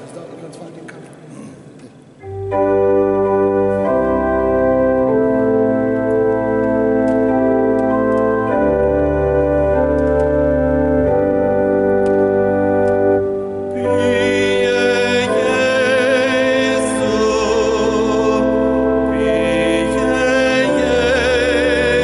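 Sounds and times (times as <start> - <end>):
church organ sustained chords: 2.2 - 22.0.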